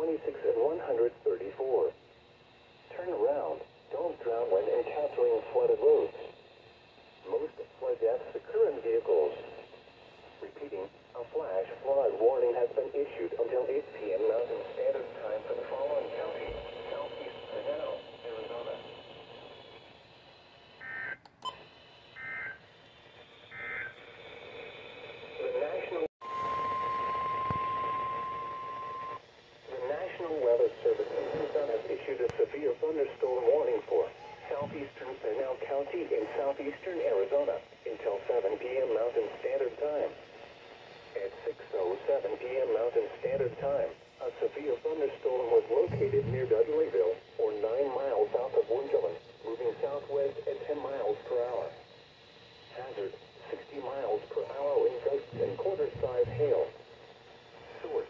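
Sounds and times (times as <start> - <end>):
single-pitch warning alert tone: 26.2 - 29.2.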